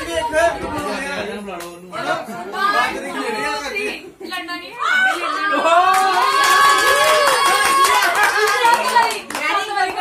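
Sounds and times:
women cheering: 4.8 - 9.2
group clapping rapidly: 5.8 - 10.0.

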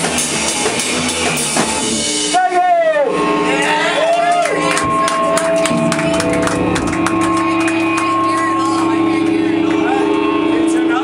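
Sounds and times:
electric guitars: 3.2 - 11.0.

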